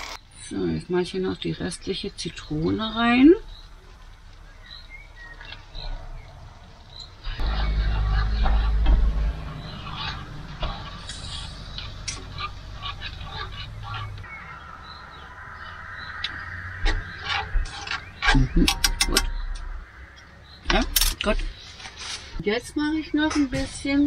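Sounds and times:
loud low rumble: 7.2 - 20.5
spatula scraping a frying pan: 7.3 - 14.6, 16.6 - 19.5.

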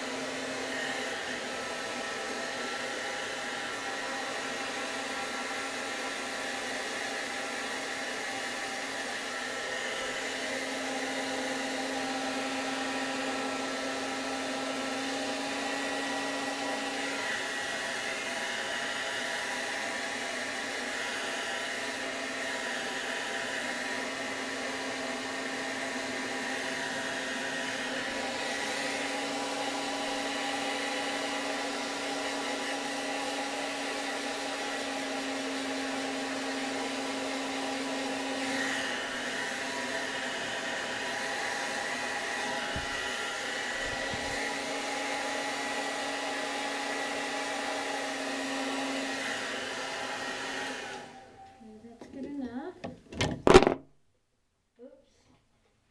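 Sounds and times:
hair dryer running: 0.0 - 53.7.

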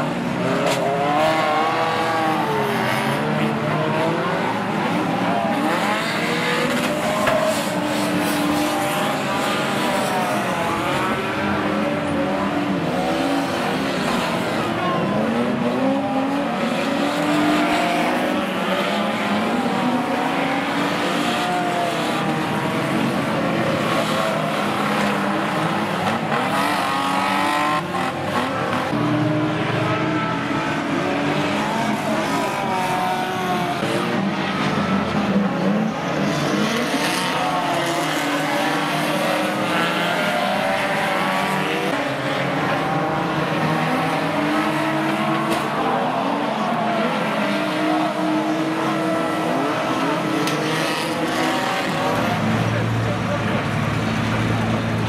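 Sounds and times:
racing car engines revving: 0.0 - 55.0.

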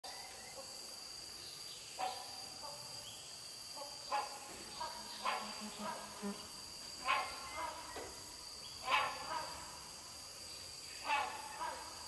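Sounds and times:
insects droning: 0.0 - 12.0
distant hornbill calls: 3.8 - 10.1, 10.9 - 12.0.

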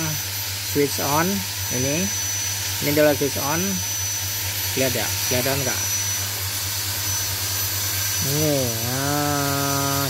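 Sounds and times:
machine hum and whir: 0.0 - 10.0.

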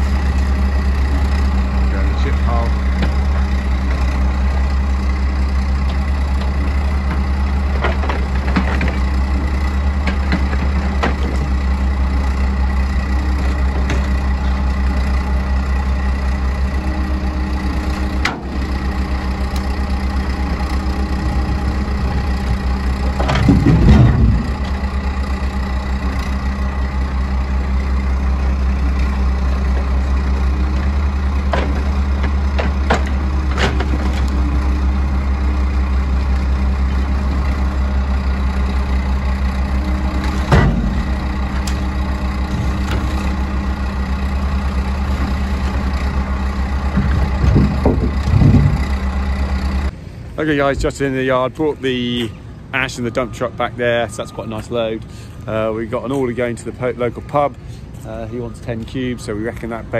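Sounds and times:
diesel engines running: 0.0 - 59.9
logs thumping into metal truck bed: 5.8 - 9.3, 10.0 - 11.6, 22.5 - 24.8, 31.4 - 34.3, 40.2 - 43.2, 46.8 - 49.1.

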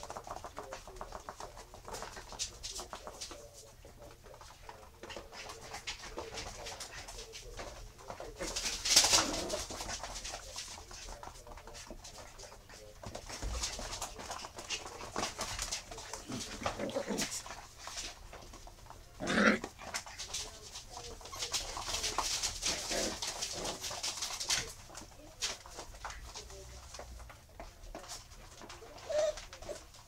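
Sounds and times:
paws and toys clicking on floor: 0.0 - 30.0.

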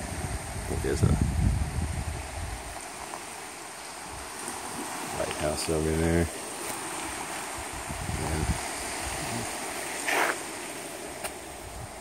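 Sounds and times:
small waves breaking on shore: 0.0 - 12.0
wind buffeting microphone: 0.0 - 12.0.

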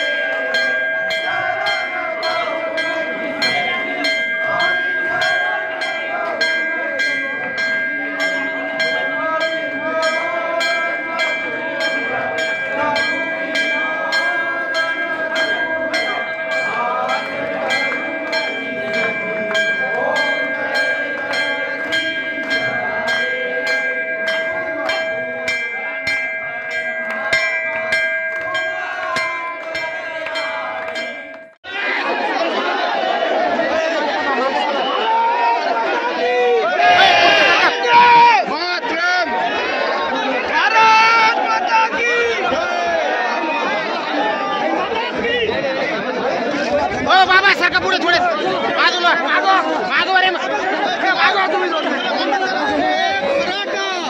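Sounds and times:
temple bell ringing: 0.0 - 31.7
crowd chattering and shouting: 0.0 - 54.0
people's voices: 0.0 - 54.0.

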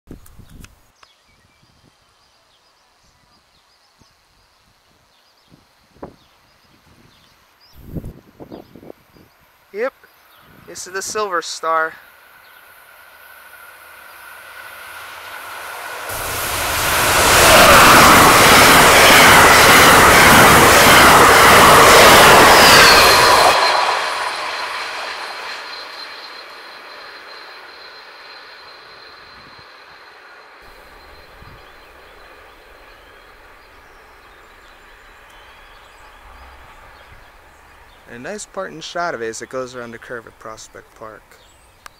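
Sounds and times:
train cars passing at speed: 9.8 - 41.9
thin high steady tone: 23.7 - 38.9
faint bird chirps: 30.7 - 38.2.

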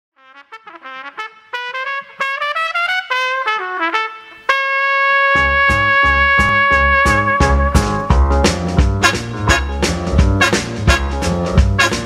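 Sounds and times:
trumpet playing: 0.2 - 12.0
swing bass and drums: 5.4 - 12.0.

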